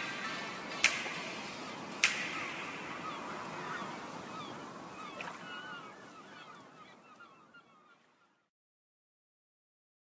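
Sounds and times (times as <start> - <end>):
steady background hiss: 0.0 - 7.8
birds chirping: 0.0 - 8.5.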